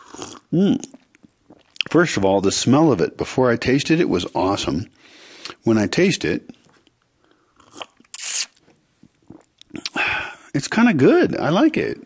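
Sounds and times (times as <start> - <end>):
faint lip clicks: 7.6 - 10.0.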